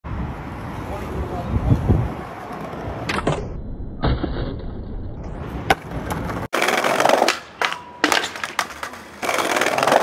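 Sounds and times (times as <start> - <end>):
skateboard wheels rolling on brick: 2.1 - 3.5, 4.2 - 10.0
skateboard clack: 2.4 - 3.5, 5.6 - 10.0.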